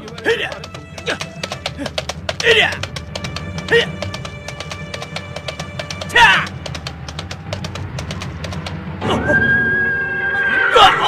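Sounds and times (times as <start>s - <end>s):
hoofbeat-like clicks: 0.0s - 8.9s.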